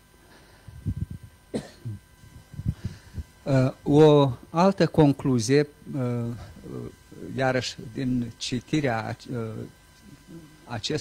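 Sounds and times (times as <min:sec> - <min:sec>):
man clearing throat and coughing: 0:01.5 - 0:02.1.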